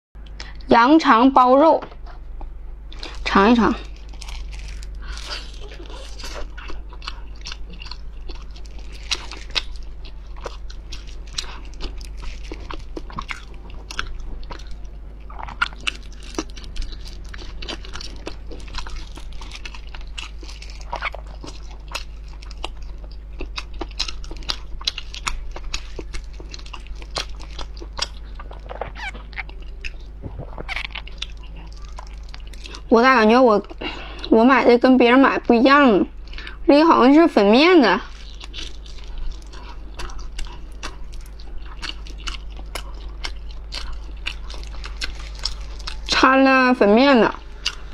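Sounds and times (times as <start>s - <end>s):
chewing and biting sausage: 2.1s - 34.4s, 37.8s - 46.3s, 47.3s - 47.9s.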